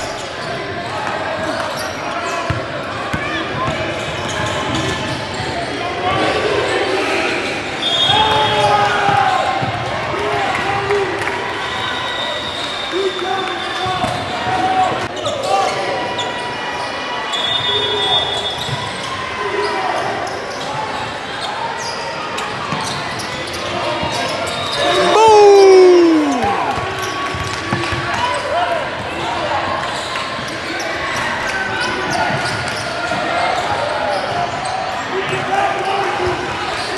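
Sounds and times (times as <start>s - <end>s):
people calling out in echoing hall: 24.8s - 27.0s
long falling shout: 25.0s - 26.7s.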